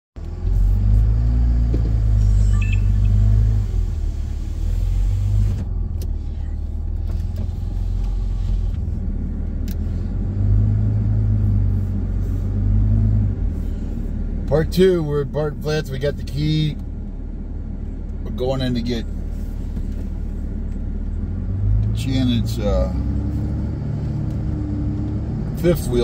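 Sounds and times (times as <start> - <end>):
car engine and tyre rumble: 0.2 - 26.0.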